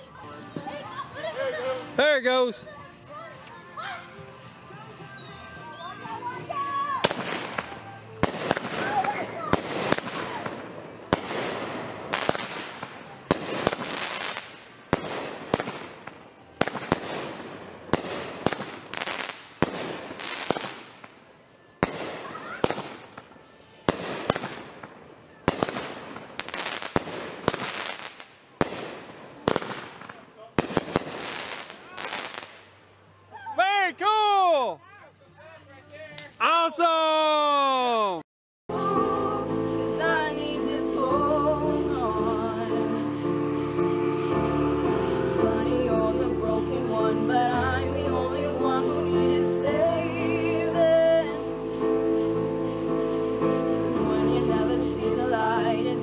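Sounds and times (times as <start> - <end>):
fireworks crackle: 5.8 - 34.7, 40.0 - 56.0
fireworks sharp bangs: 7.0 - 32.7.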